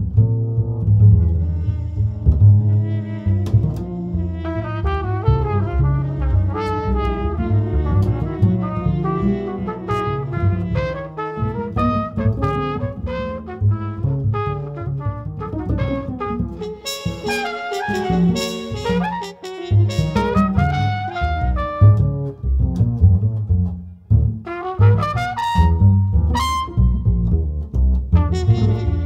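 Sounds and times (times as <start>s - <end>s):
double bass low notes: 0.0s - 29.0s
trumpet playing short notes: 4.4s - 14.5s, 16.2s - 22.0s, 24.5s - 26.8s, 28.2s - 29.0s.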